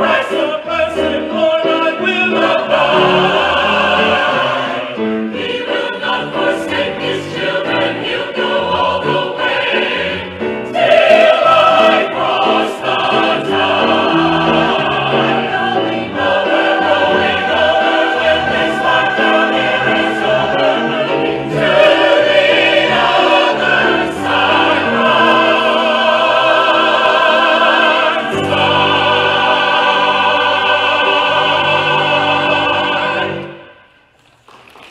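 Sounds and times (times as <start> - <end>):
piano accompaniment: 0.0 - 33.8
choir singing gospel: 0.0 - 34.0.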